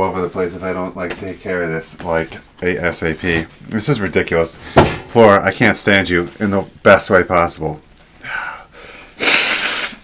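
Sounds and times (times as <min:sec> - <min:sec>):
man blowing his nose: 0:08.9 - 0:10.0.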